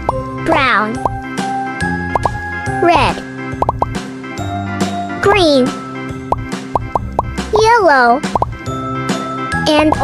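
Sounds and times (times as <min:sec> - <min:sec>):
light children's music: 0:00.0 - 0:10.0.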